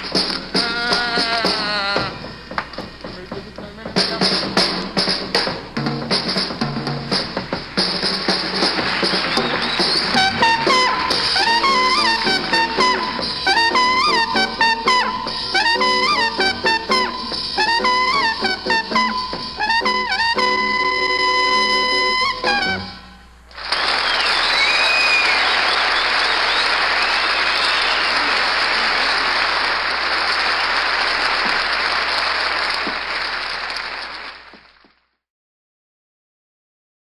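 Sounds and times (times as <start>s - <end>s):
audience applauding: 7.4s - 14.5s, 23.5s - 35.0s
jazz quintet playing: 10.1s - 23.2s
trumpet phrases: 10.1s - 23.3s.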